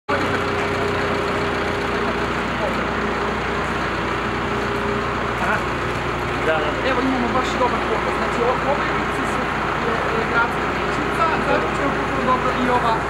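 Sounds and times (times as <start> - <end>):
diesel engine running: 0.1 - 13.0.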